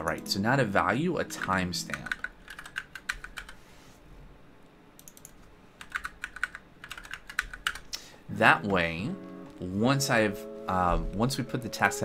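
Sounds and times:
computer keyboard typing: 1.3s - 3.6s, 5.0s - 7.9s.

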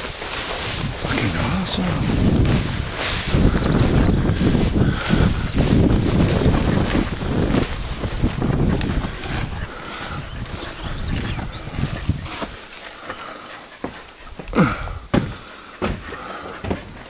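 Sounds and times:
wind buffeting microphone: 0.0s - 13.2s.

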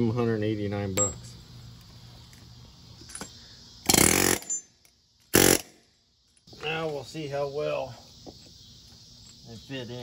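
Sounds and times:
pneumatic impact wrench burst: 3.2s - 5.8s.

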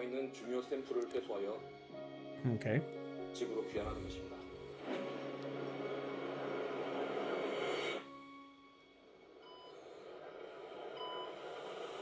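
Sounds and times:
low musical drone: 0.0s - 10.8s.

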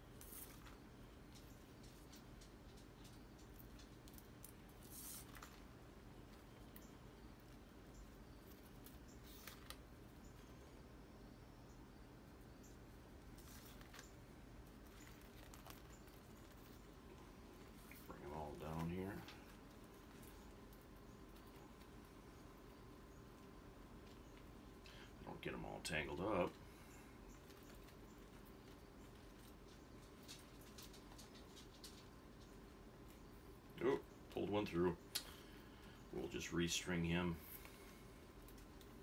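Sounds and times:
dried peppers rustling: 0.0s - 11.1s, 11.9s - 39.0s.

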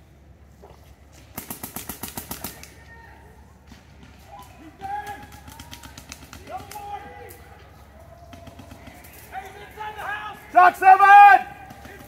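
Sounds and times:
rapid paintball marker shots: 1.1s - 2.8s, 3.6s - 9.6s, 11.4s - 12.0s
players shouting: 2.4s - 12.0s.

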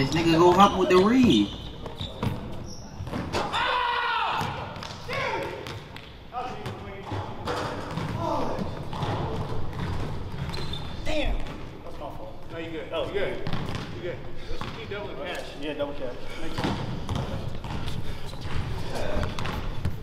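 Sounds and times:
players' voices: 0.0s - 10.0s
basketball bouncing on hardwood: 16.6s - 20.0s.

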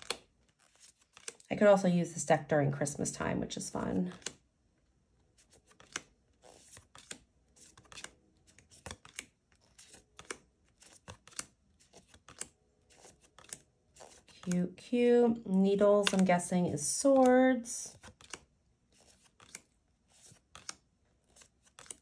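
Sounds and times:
cards flipping: 0.0s - 1.5s, 4.0s - 4.4s, 5.3s - 14.6s, 16.0s - 16.4s, 17.0s - 22.0s.

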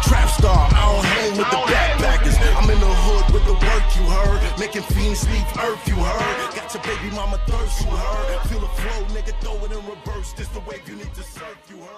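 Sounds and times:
heavy bass: 0.0s - 11.4s
rapping over a beat: 0.0s - 11.9s.

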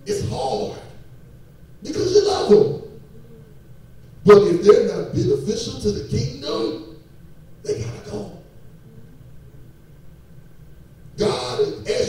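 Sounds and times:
faint thin whine: 0.0s - 12.0s
low hum: 0.0s - 12.0s.

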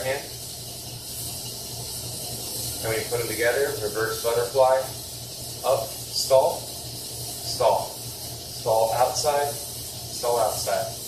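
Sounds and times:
background hiss: 0.0s - 11.0s
low even hum: 0.0s - 11.0s.

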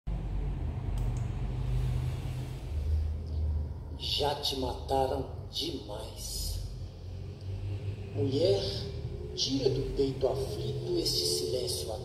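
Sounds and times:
low rumbling drone: 0.1s - 12.0s.

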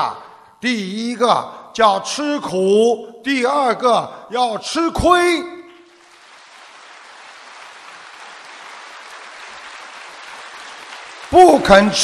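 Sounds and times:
audience applauding: 5.6s - 12.0s.

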